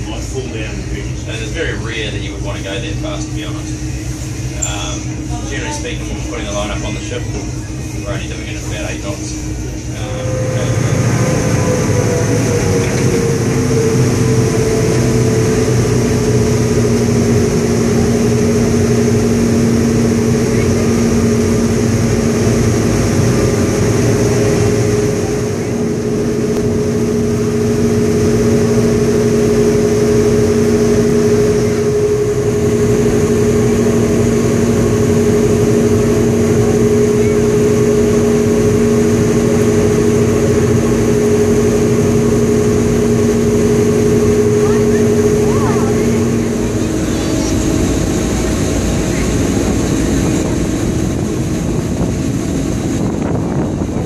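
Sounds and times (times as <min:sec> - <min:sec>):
diesel engines deep drone: 0:00.0 - 0:54.0
steady hum: 0:00.0 - 0:54.0.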